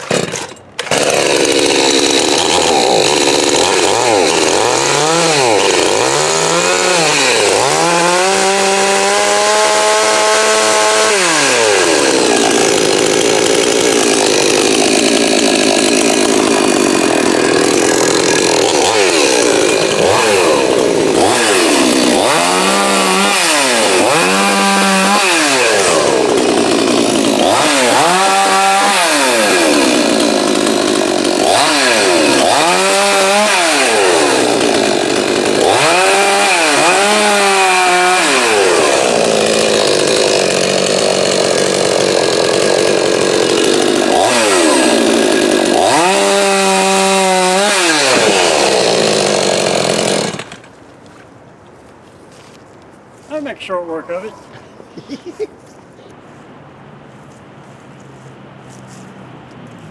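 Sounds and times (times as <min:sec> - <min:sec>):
chainsaw revving and cutting: 0:00.0 - 0:50.7.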